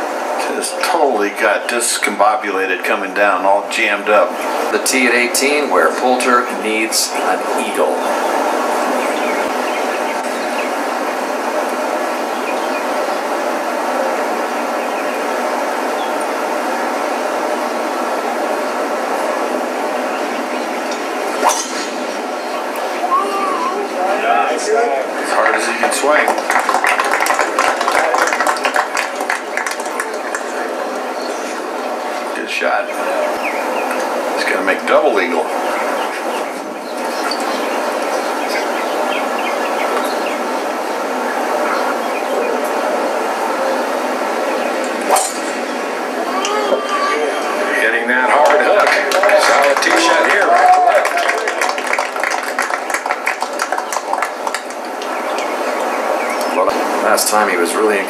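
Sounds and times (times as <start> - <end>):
outdoor crowd hum: 0.0 - 58.0
crowd shouting and applauding: 23.0 - 31.2, 46.2 - 55.6.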